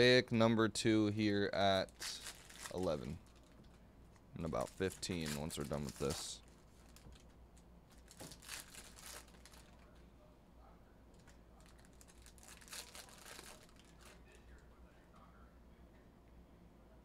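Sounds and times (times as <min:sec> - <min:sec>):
trading cards rustling and clicking: 0:04.4 - 0:07.3.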